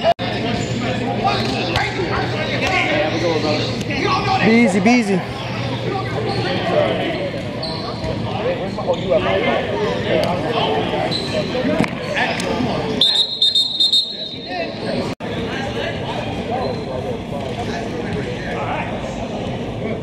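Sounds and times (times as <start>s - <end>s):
players calling and chattering: 0.0s - 20.0s
referee's whistle: 13.0s - 14.6s.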